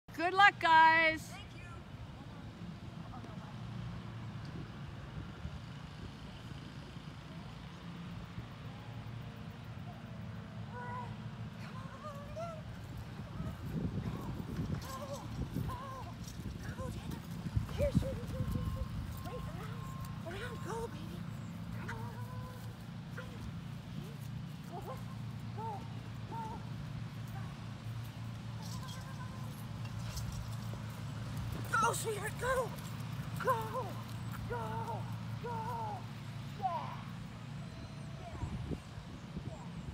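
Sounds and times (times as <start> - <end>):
running footsteps on grass: 11.5 - 37.5
person calling to a dog: 24.7 - 27.6, 33.4 - 37.0.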